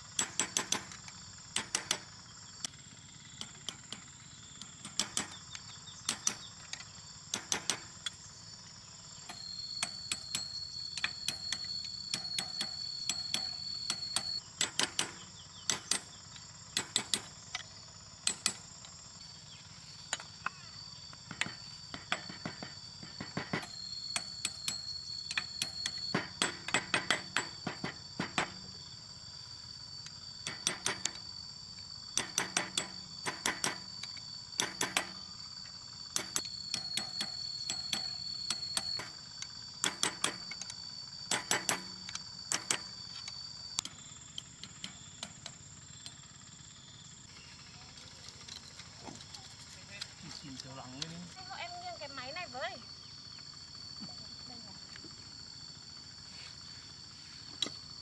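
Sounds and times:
high-pitched insect drone: 0.0 - 58.0.

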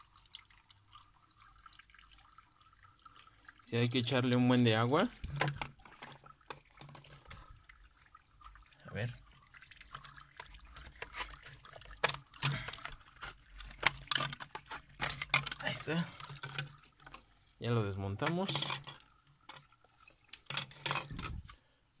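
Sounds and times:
water splashing and dripping: 0.0 - 21.4
filter parts knocking and clattering: 5.1 - 7.6, 9.9 - 17.3, 17.9 - 21.6.

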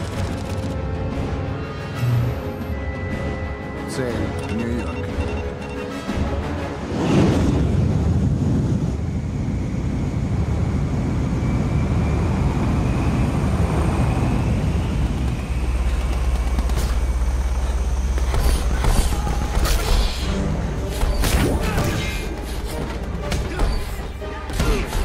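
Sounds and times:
jet engines roaring: 6.6 - 19.6.

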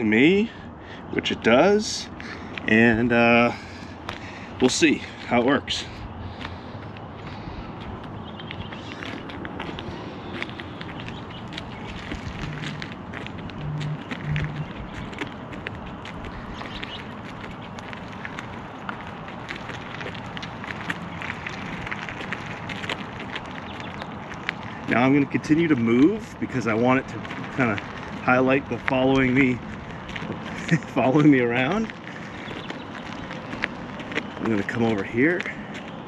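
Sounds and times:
footsteps on asphalt: 0.0 - 36.0
outdoor background noise: 0.0 - 36.0.

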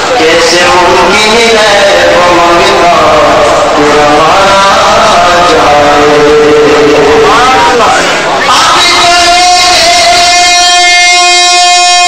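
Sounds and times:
man singing devotional song: 0.0 - 12.0.

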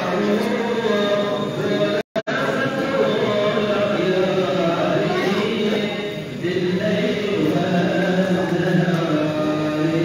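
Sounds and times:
man chanting religious recitation: 0.0 - 10.0.

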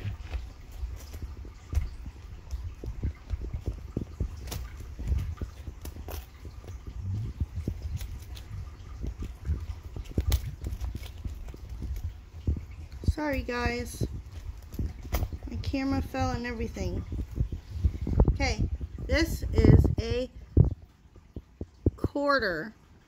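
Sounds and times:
handling knocks and clicks: 0.0 - 18.2
low steady rumble: 0.0 - 23.0.

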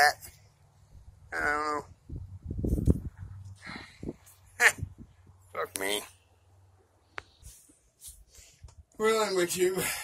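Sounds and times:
high-pitched vocal cry: 4.6 - 4.9.

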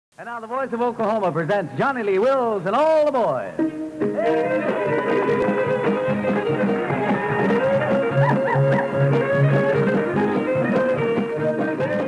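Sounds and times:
western swing band playing: 0.2 - 12.0.

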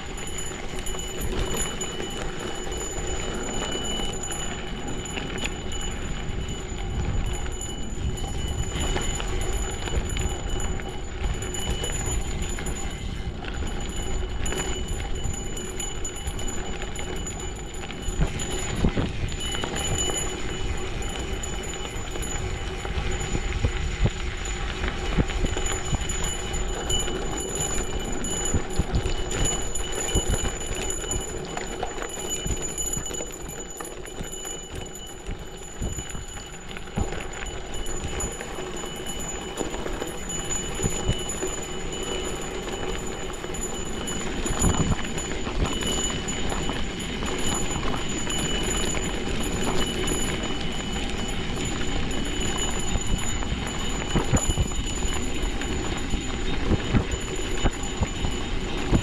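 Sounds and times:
bike rattling: 0.0 - 59.0
tyres crunching over loose stones: 8.2 - 59.0.

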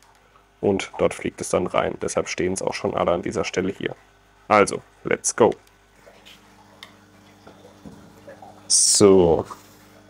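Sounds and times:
aquarium pump humming: 0.0 - 10.0.

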